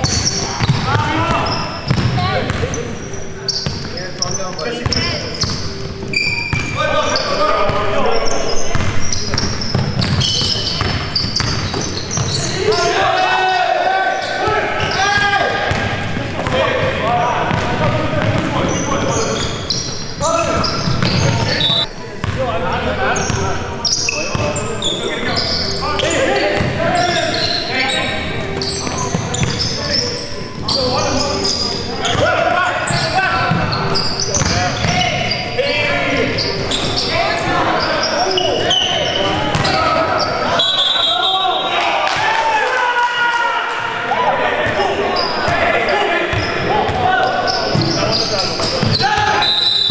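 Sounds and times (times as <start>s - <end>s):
basketball bouncing on wooden court: 0.0s - 2.8s, 8.7s - 12.4s, 17.5s - 19.2s, 34.4s - 35.0s
sneakers squeaking: 0.0s - 41.7s, 44.6s - 49.9s
short high squeaks: 5.0s - 7.4s
players shouting: 31.0s - 49.9s.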